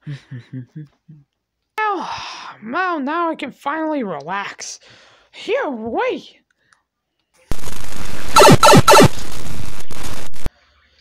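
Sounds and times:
crackling noise: 7.5s - 10.5s.

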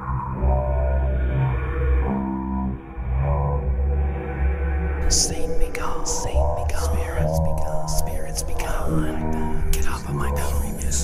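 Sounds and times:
background music with drone: 0.0s - 11.0s
person whispering: 5.0s - 11.0s.

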